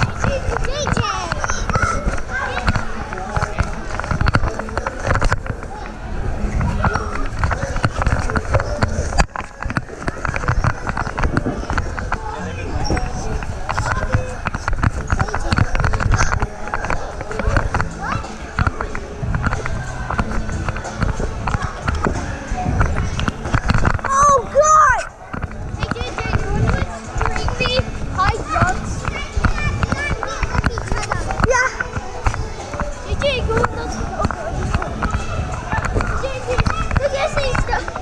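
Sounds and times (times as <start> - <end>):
children shouting and squealing: 0.0 - 3.4, 24.0 - 25.2, 25.8 - 38.0.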